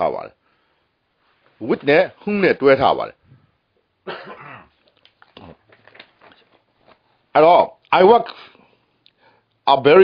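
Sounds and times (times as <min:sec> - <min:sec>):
person coughing: 0:04.0 - 0:04.8.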